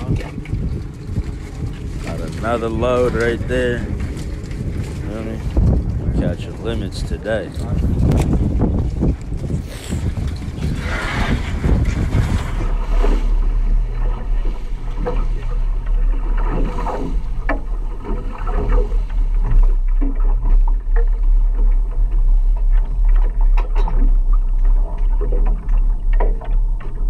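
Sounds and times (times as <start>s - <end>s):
boat engine rumble: 0.0s - 27.0s
knocks and clatter of gear: 0.0s - 27.0s.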